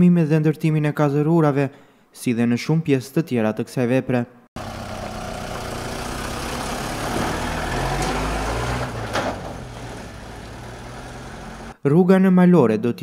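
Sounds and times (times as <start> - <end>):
heavy truck engine running: 4.6 - 11.8.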